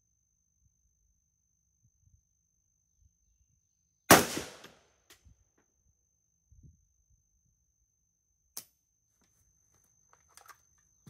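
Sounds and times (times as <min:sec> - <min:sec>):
rifle shot: 0:04.1 - 0:04.8.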